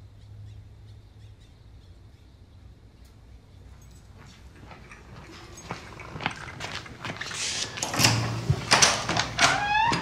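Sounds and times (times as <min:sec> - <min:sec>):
faint footsteps: 0:03.6 - 0:10.0.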